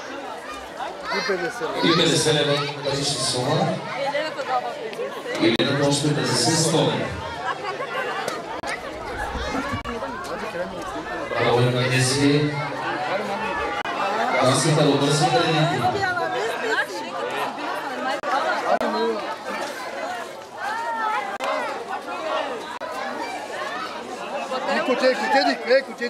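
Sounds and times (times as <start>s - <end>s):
party crowd talking: 0.0s - 26.0s
louder voice: 14.4s - 16.4s.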